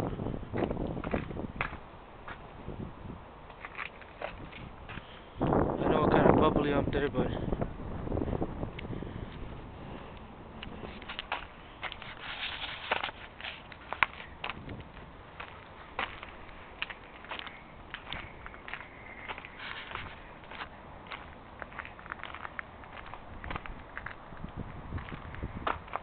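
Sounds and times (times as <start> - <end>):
footsteps on asphalt: 0.1 - 2.8, 3.4 - 5.6, 7.5 - 26.0.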